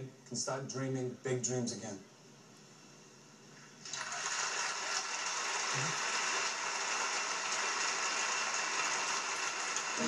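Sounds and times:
studio audience applauding: 0:03.9 - 0:10.0.

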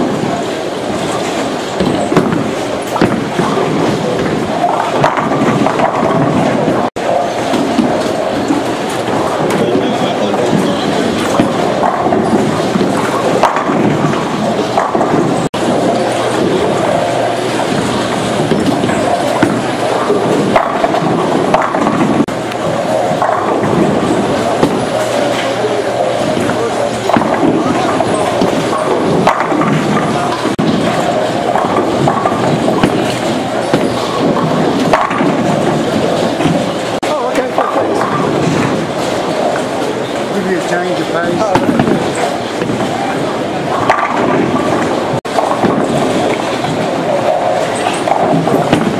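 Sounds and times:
bowling balls rolling: 0:00.0 - 0:48.9
bowling pins knocking: 0:00.0 - 0:48.9.

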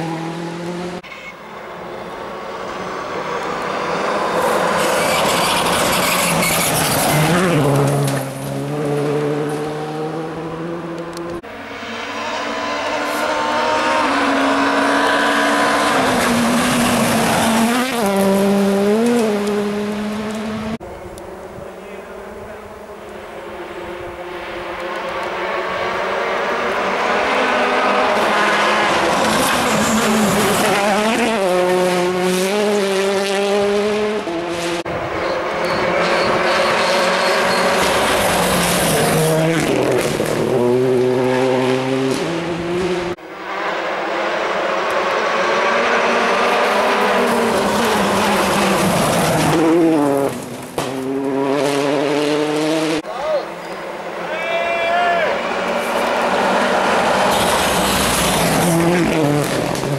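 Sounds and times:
rally cars at full throttle: 0:00.0 - 0:59.9.

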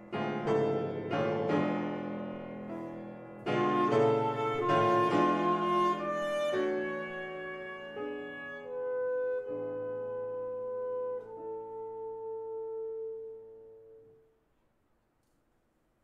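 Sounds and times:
alto saxophone sustained notes: 0:03.5 - 0:14.4.

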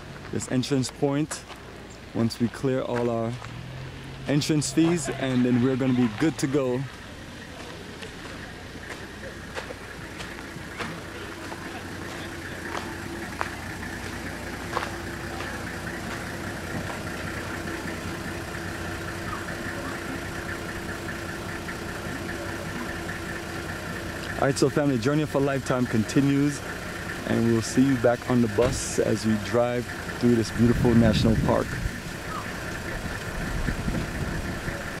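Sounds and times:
vehicle engine idling: 0:00.0 - 0:35.0
higher hum: 0:04.9 - 0:24.4.

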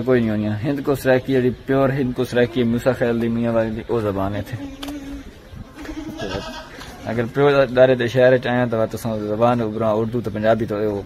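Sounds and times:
goat bleating: 0:04.4 - 0:07.3.

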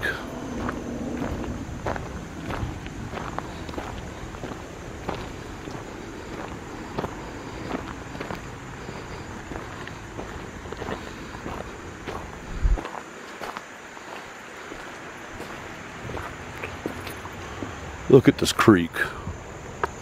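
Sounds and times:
footsteps on gravel: 0:00.0 - 0:17.8.

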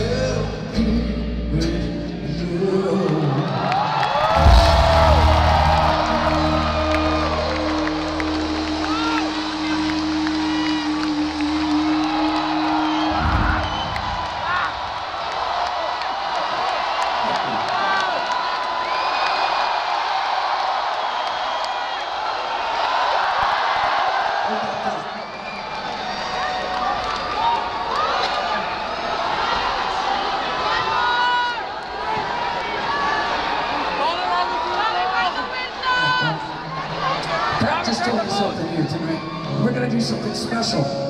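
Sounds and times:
crowd cheering and whooping: 0:03.2 - 0:39.6
rock band playing: 0:04.4 - 0:14.3.

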